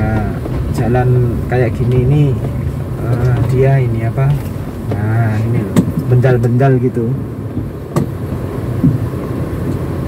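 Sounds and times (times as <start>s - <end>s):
low rumble of engine and tyres: 0.0s - 10.0s
suspension taking bumps: 0.0s - 10.0s.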